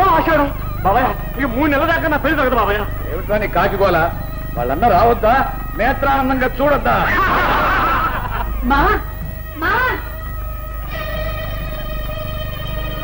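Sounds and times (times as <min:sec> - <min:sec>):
film music sustained chord: 0:00.0 - 0:13.0
man's loud ha bursts: 0:04.6 - 0:10.2
loud laughter: 0:06.9 - 0:09.1.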